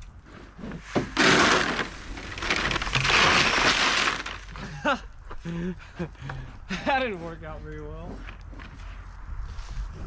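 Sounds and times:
grain pouring into plastic trough: 0:01.2 - 0:04.5.

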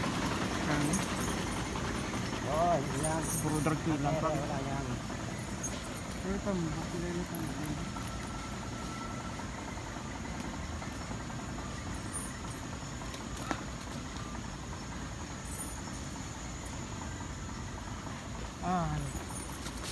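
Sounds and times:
low rumbling and rustling: 0:00.0 - 0:19.9.

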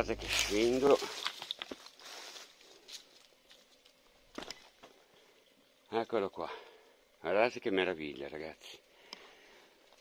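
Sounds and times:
footsteps on rocks and stones: 0:00.1 - 0:04.8.

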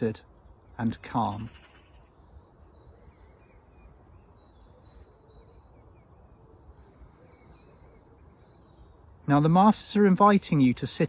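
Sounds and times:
faint bird chirping: 0:00.0 - 0:10.8.

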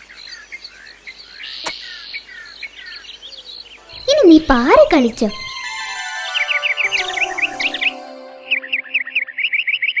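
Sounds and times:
synthesizer background music: 0:03.8 - 0:09.6.

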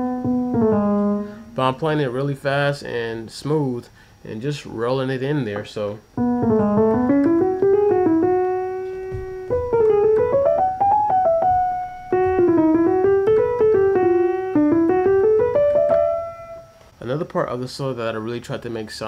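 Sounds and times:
jazzy piano solo: 0:00.0 - 0:02.3, 0:05.5 - 0:16.9.

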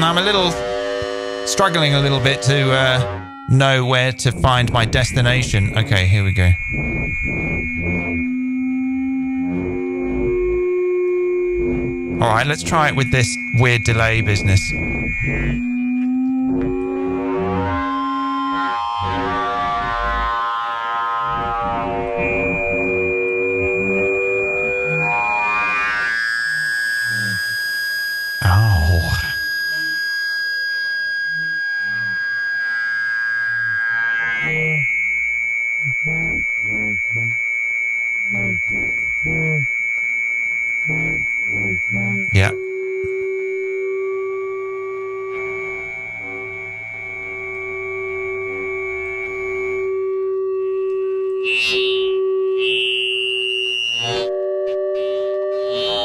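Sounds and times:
rhythmic pulsing: 0:00.0 - 0:19.1, 0:34.4 - 0:37.5, 0:38.2 - 0:39.8, 0:40.6 - 0:50.1
synthetic feedback whining tones: 0:00.0 - 0:56.0.

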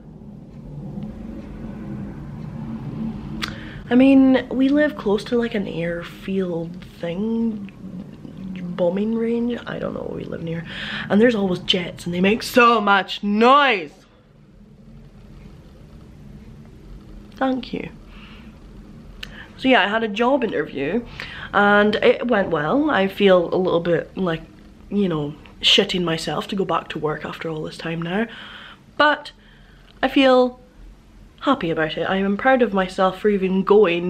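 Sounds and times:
jet aircraft passing over: 0:00.0 - 0:07.0
jet aircraft rumble: 0:00.0 - 0:28.4.

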